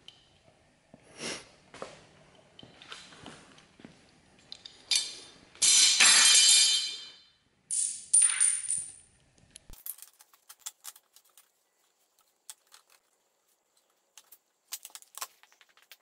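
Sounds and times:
metal clamps clattering on concrete: 4.5s - 9.0s.

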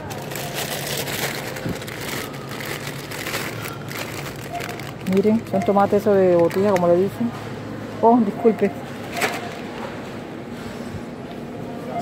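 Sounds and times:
plastic bags crinkling: 0.0s - 7.2s.

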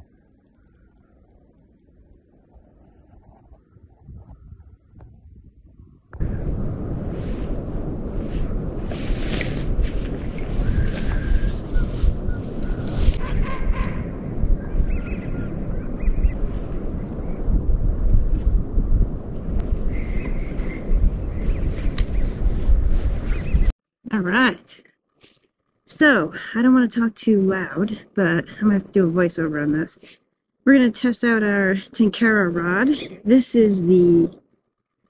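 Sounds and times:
wind buffeting microphone: 0.0s - 23.8s.

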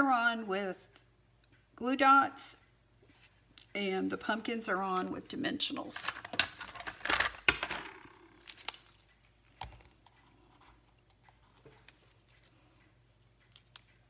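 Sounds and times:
faint clicks and taps: 8.4s - 14.0s.

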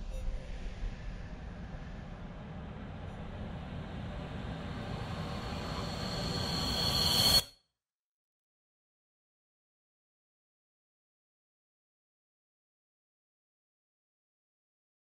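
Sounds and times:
high shrill whine: 3.4s - 7.5s.

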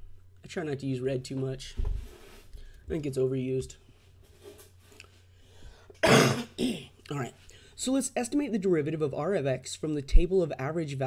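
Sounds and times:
person coughing: 6.0s - 7.0s.

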